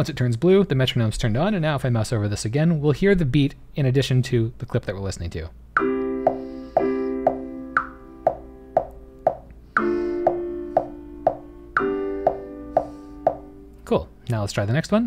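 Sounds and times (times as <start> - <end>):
metronome clicking: 5.8 - 13.5
piano chords: 5.8 - 13.8.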